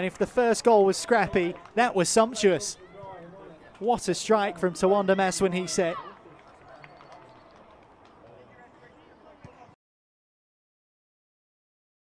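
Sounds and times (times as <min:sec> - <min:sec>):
low murmur of distant voices: 0:00.9 - 0:09.8.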